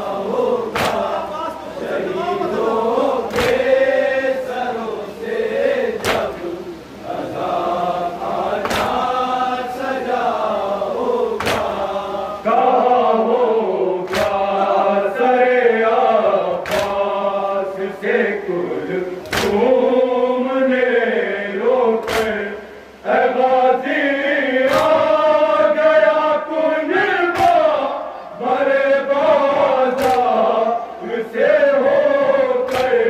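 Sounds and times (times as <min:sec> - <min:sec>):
men chanting a lament: 0:00.0 - 0:33.0
hands slapping chests: 0:00.7 - 0:01.1, 0:03.3 - 0:03.6, 0:06.0 - 0:06.3, 0:08.6 - 0:09.0, 0:11.4 - 0:11.7, 0:14.1 - 0:14.4, 0:16.6 - 0:17.0, 0:19.2 - 0:19.6, 0:22.0 - 0:22.3, 0:27.4 - 0:27.6, 0:30.0 - 0:30.3, 0:32.7 - 0:33.0.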